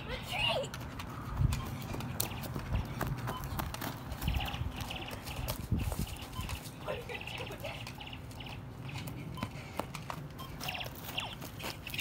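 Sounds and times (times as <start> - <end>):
running footsteps on grass: 0.1 - 12.0.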